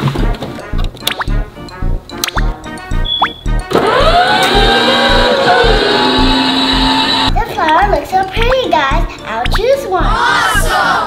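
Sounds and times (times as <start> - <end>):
background music with steady beat: 0.0 - 11.0
toy motorcycle motor whining: 3.7 - 7.3.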